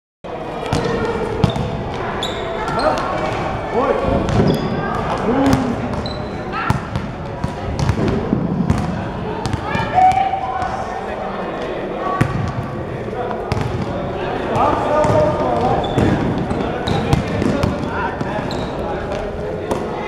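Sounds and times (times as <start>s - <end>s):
basketballs bouncing on floor: 0.7s - 1.8s, 4.3s - 9.7s, 13.5s - 13.9s, 14.6s - 18.3s
players calling out: 0.8s - 6.8s.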